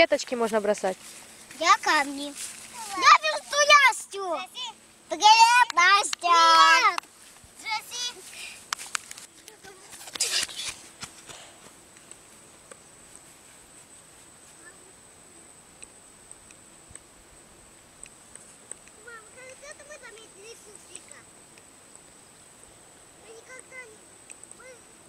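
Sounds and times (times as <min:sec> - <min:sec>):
child calling out loudly: 0:02.8 - 0:07.0, 0:24.6 - 0:25.0
faint ticks: 0:15.7 - 0:17.1, 0:18.0 - 0:22.2, 0:23.5 - 0:24.7.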